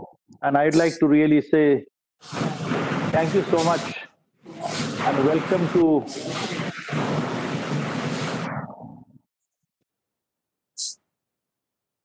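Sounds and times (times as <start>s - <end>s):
static-like rushing noise: 2.2s - 9.0s.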